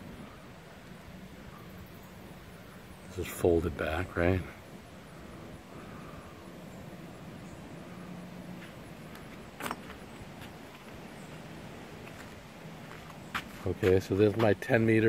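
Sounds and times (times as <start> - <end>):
outdoor background noise: 0.0 - 15.0.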